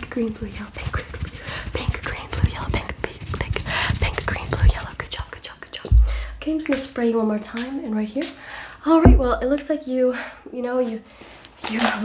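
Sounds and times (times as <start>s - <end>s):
fur rustling against microphone: 0.2s - 5.2s
dull handling thumps: 5.9s - 6.5s, 8.9s - 9.6s.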